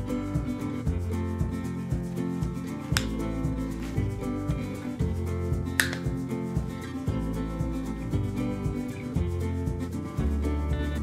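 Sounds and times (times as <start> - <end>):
instrumental music: 0.0 - 11.0
hand cutter snipping stems: 2.9 - 3.2, 5.8 - 6.2.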